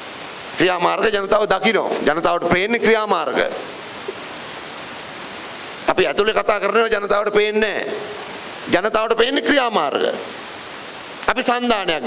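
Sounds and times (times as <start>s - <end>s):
steady hiss: 0.0s - 12.0s
man speaking into microphone: 0.6s - 3.8s, 5.8s - 10.4s, 11.2s - 12.0s.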